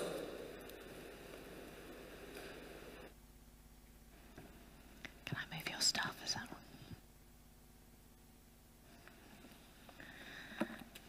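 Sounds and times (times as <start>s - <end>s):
low steady hum: 0.0s - 11.0s
person whispering: 5.2s - 6.8s.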